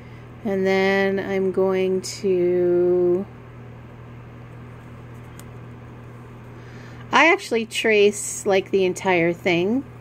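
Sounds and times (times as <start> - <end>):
low hum with faint hiss: 0.0 - 10.0.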